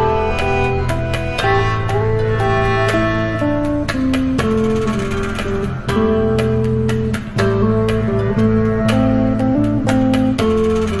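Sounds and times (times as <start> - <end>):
backing track with drone and percussion: 0.0 - 11.0
electric guitar melody: 0.0 - 11.0.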